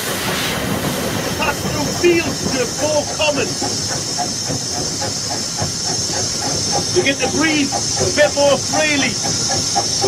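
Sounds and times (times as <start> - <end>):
steam hissing: 0.0 - 10.0
train rattling: 0.0 - 10.0.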